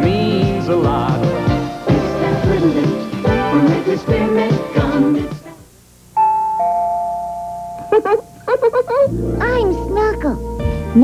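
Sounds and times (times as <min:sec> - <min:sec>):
sung jingle note: 0:06.2 - 0:08.2
two-note chime: 0:06.2 - 0:08.3.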